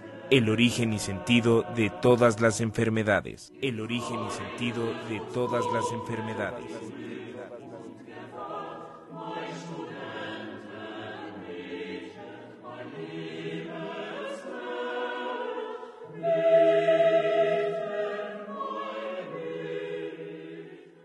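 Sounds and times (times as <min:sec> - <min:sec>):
choral singing with held notes: 0:00.0 - 0:21.0.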